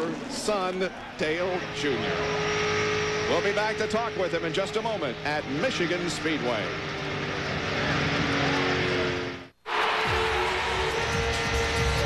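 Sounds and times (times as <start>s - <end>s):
race cars on track: 0.0s - 12.0s
race car engine running: 1.4s - 9.5s, 10.6s - 12.0s
music: 10.0s - 12.0s.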